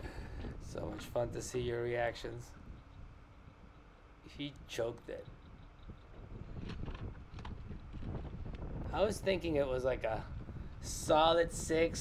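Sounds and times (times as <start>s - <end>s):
wind buffeting microphone: 0.0s - 12.0s
handling clicks and knocks: 5.4s - 8.6s.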